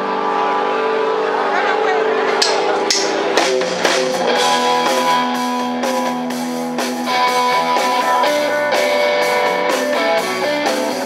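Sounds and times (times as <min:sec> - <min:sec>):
crowd voices: 0:00.0 - 0:11.0
electric guitar chord ringing: 0:00.0 - 0:11.0.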